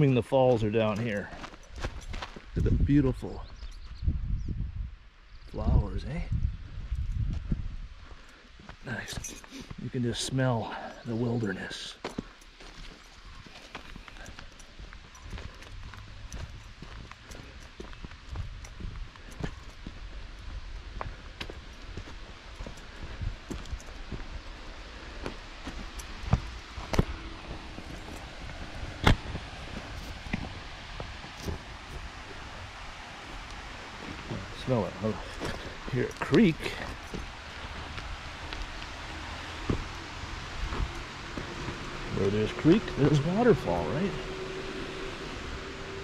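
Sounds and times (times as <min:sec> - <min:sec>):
footsteps on dirt trail: 0:00.0 - 0:04.0, 0:06.6 - 0:43.8
faint steady hiss: 0:07.8 - 0:45.5.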